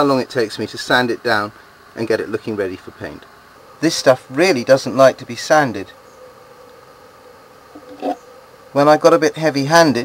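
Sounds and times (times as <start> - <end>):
background hiss: 0.0 - 10.0
faint hum: 0.0 - 10.0.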